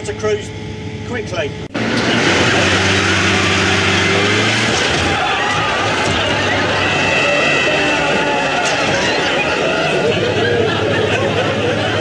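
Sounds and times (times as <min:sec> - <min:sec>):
road noise: 0:00.0 - 0:12.0
van engine droning: 0:00.0 - 0:12.0.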